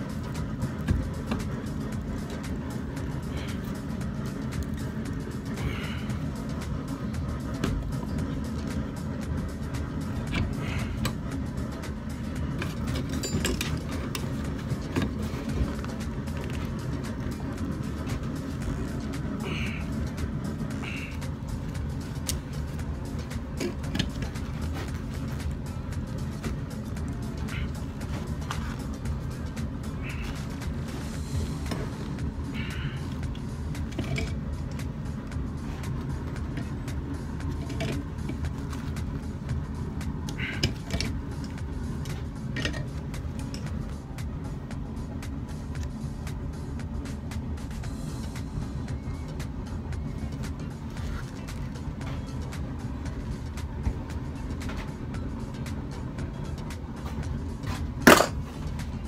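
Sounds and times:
forge burner roaring: 0.0s - 59.0s.

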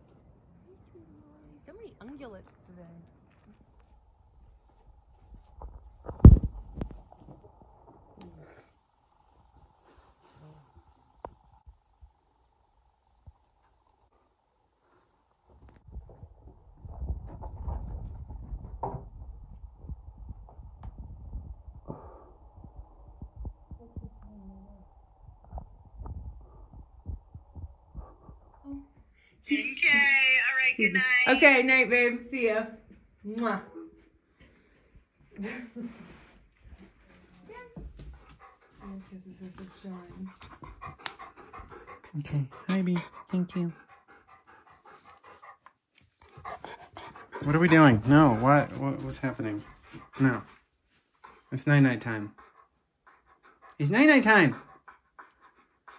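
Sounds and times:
dog panting: 26.4s - 28.6s, 36.7s - 55.9s.

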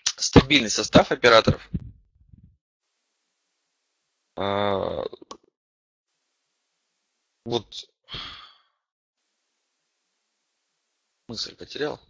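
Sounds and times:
man sighing: 8.1s - 8.6s.

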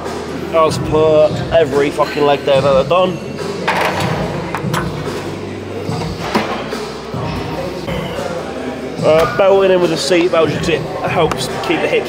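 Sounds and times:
faint background music: 0.0s - 12.0s
gym room ambience: 1.2s - 11.9s.

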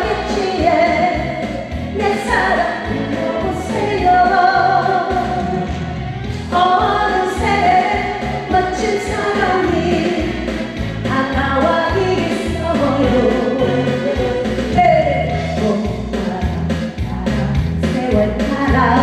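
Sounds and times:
woman singing into a microphone: 0.0s - 5.8s, 6.5s - 19.0s
instrumental backing track: 0.0s - 19.0s.

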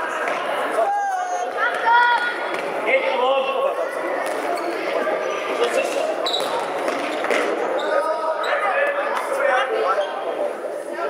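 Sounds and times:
children and spectators shouting: 0.6s - 2.5s.

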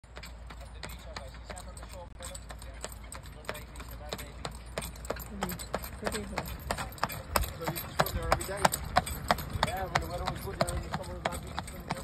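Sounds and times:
horse hooves clip-clopping on road: 0.0s - 12.0s.

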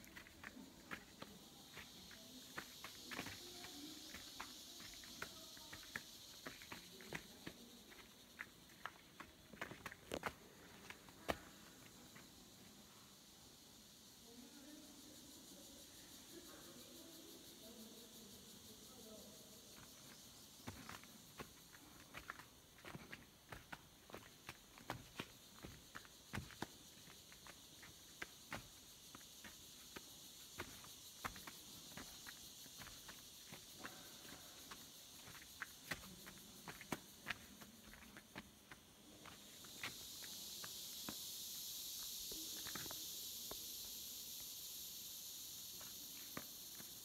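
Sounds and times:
footsteps crunching on dirt trail: 0.0s - 12.3s, 19.9s - 43.1s
high insect buzz: 0.0s - 47.0s.

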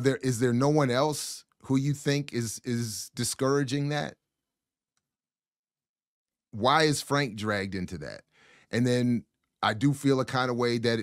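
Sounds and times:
man speaking: 0.0s - 4.2s, 6.6s - 11.0s.

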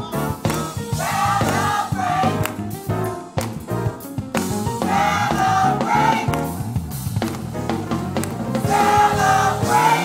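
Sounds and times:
bass line: 0.0s - 10.0s
drum kit hits: 0.0s - 10.0s.

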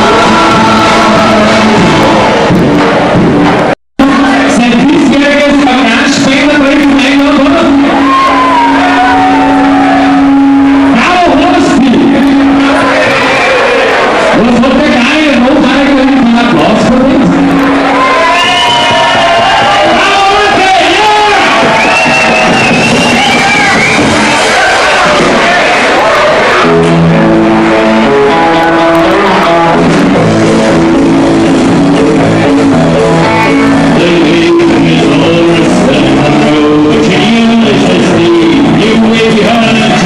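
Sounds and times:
live band music: 0.0s - 40.0s.

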